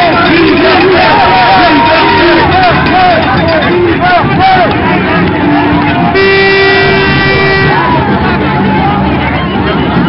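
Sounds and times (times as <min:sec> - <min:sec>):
crowd chatter: 0:00.0 - 0:10.0
horn blast: 0:05.1 - 0:08.4.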